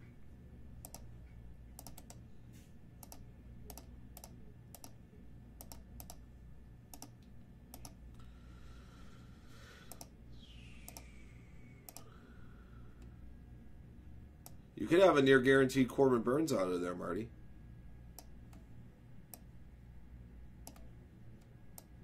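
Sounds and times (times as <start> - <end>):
keyboard and mouse clicks: 0.8 - 1.1, 1.8 - 2.2, 3.0 - 5.0, 5.6 - 6.2, 6.9 - 8.0, 9.9 - 10.1, 10.8 - 11.1, 20.6 - 20.9.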